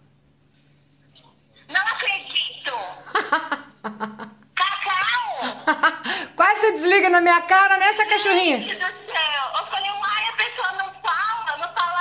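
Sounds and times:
woman laughing: 3.0s - 4.5s, 5.3s - 6.3s
speech: 6.4s - 12.0s.

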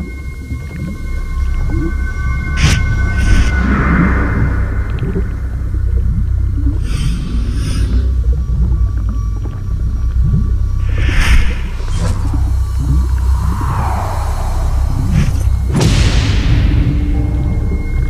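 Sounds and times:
deep low drone: 0.0s - 18.0s
groaning low sweeps: 0.0s - 18.0s
whooshing swells: 2.2s - 6.2s, 10.8s - 18.0s.

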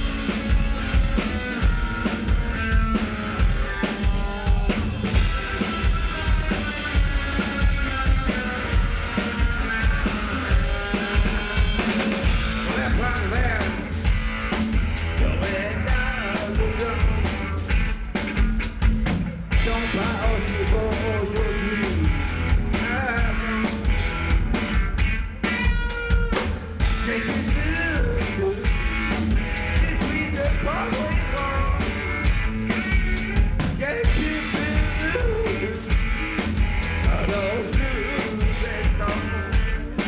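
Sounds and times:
drum kit beat: 0.0s - 40.0s.

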